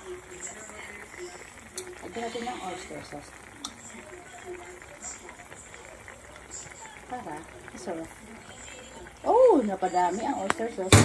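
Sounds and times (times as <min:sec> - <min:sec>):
liquid simmering in a pan: 0:00.0 - 0:11.0.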